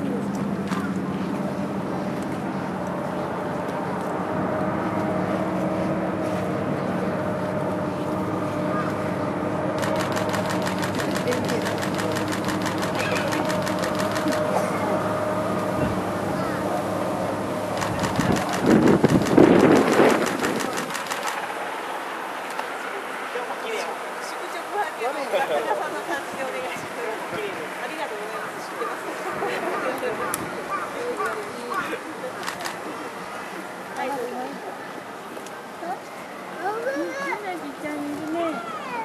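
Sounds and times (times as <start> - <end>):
steady mechanical hum: 0.0 - 22.3
faint background noise: 0.0 - 39.0
murmur of background noise: 0.0 - 39.0
fast sharp clicks: 9.8 - 14.5, 17.7 - 21.6.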